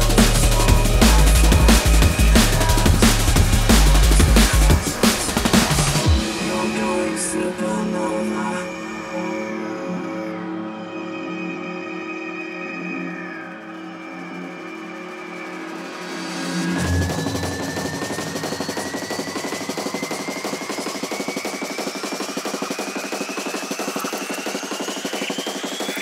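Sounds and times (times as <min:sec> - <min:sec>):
deep bass hit: 0:00.0 - 0:04.9
fast pulsing drum roll: 0:00.0 - 0:07.6, 0:15.9 - 0:26.0
rising synth sweep: 0:00.0 - 0:26.0
held synth chords: 0:08.8 - 0:26.0.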